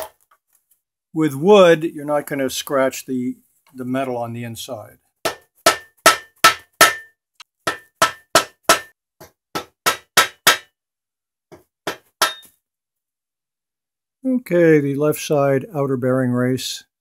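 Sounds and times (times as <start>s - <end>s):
hammer knocks with metallic ring: 5.3s - 10.7s, 11.5s - 12.6s.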